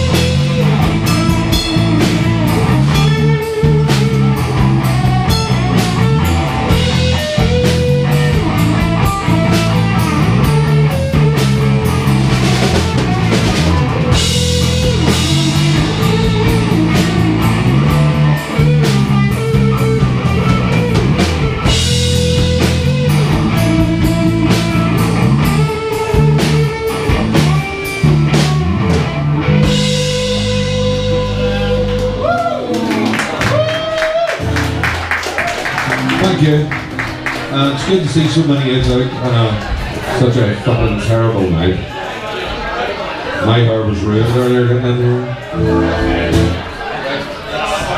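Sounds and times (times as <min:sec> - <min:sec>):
rock band playing: 0:00.0 - 0:41.7, 0:44.0 - 0:47.0
guitar chord ringing: 0:45.5 - 0:46.7.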